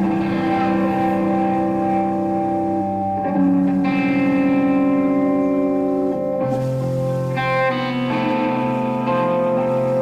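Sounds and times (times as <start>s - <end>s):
bass guitar drone: 0.0s - 10.0s
distorted electric guitar drone: 0.0s - 10.0s.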